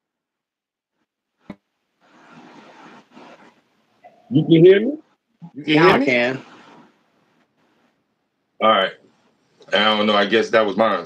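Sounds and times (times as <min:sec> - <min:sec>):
faint steady noise: 0:00.9 - 0:11.0.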